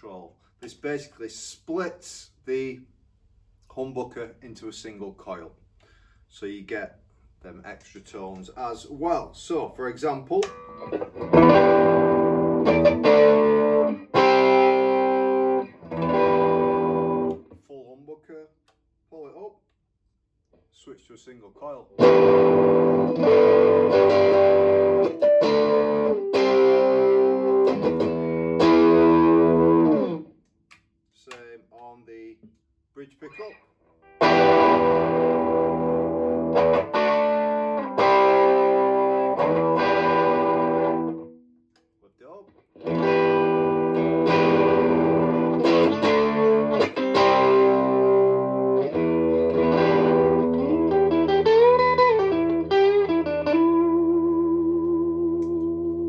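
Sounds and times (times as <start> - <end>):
electric guitar through an amp: 10.4 - 17.4, 22.0 - 30.3, 34.1 - 41.4, 42.8 - 56.0.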